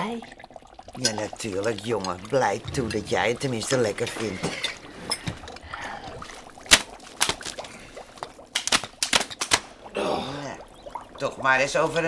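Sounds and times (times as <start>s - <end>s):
soup dribbling and sloshing: 0.0s - 12.0s.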